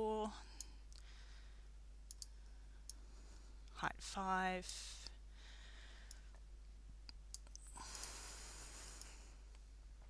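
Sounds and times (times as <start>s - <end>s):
computer mouse clicks: 2.1s - 3.0s, 7.0s - 8.2s.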